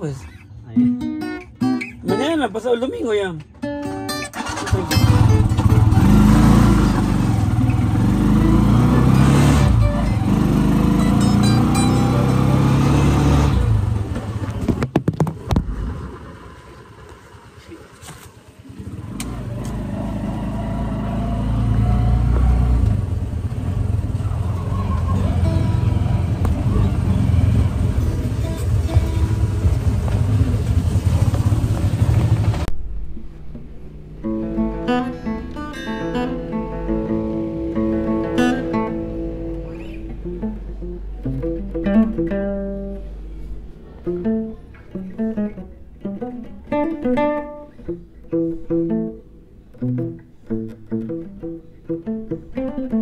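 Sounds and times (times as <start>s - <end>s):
acoustic guitar playing: 0.0s - 16.6s, 20.5s - 53.0s
motorcycle engine running: 4.4s - 34.7s.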